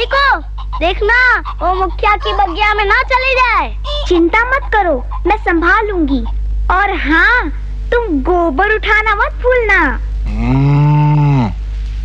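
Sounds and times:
cow mooing: 10.3s - 11.6s.

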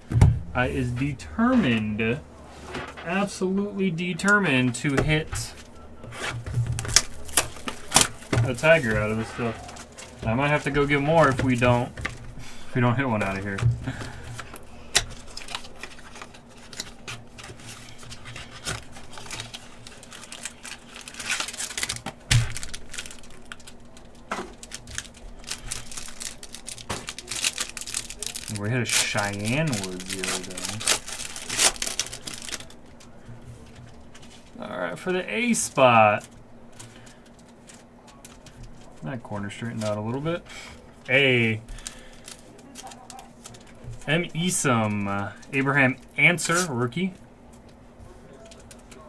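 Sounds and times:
steady low hum: 0.0s - 49.0s
foil wrapper crinkling: 5.1s - 34.6s, 35.5s - 47.2s.

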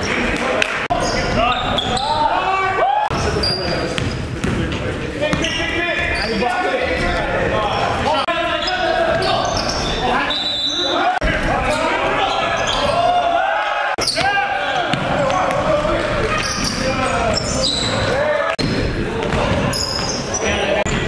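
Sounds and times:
players' voices: 0.0s - 21.0s
sneakers squeaking on hardwood: 0.9s - 2.4s, 3.1s - 11.0s, 14.0s - 21.0s
basketball bouncing: 4.0s - 6.1s, 14.0s - 17.5s, 18.6s - 20.2s.

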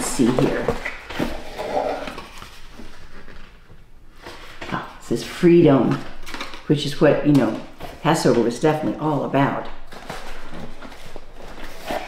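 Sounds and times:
cardboard and paper rustling: 0.0s - 12.0s.

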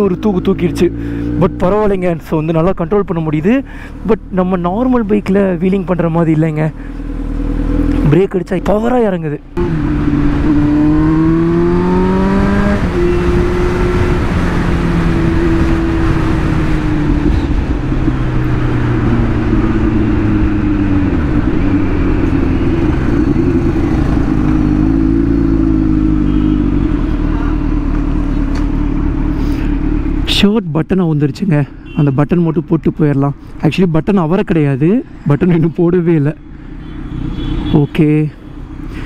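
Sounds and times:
motorcycle engine revving: 5.9s - 8.4s, 9.5s - 30.3s.

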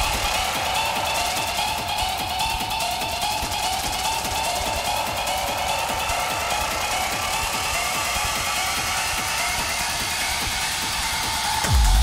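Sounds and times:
industrial techno music: 0.0s - 12.0s.

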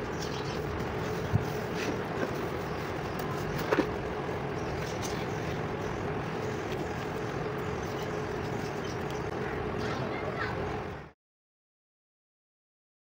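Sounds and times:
faint steady hum: 0.0s - 11.2s.

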